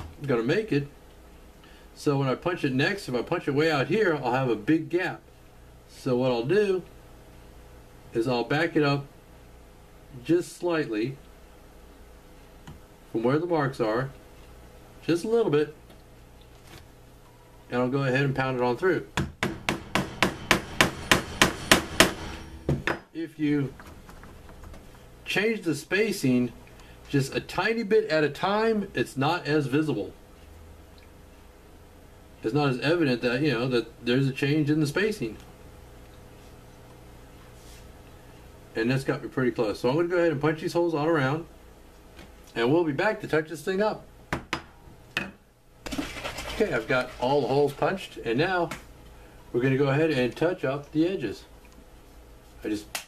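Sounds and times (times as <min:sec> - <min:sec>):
mallet striking leather punch: 0:19.2 - 0:22.2.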